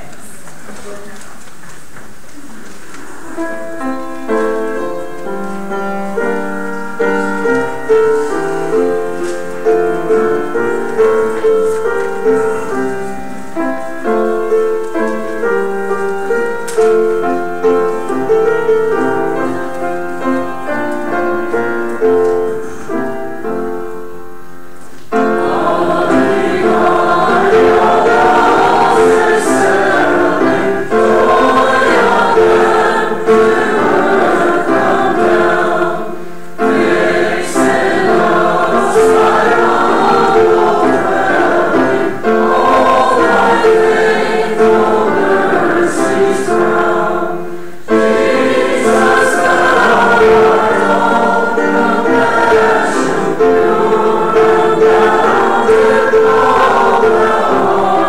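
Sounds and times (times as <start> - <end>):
choir and congregation singing hymn: 3.2 - 58.0.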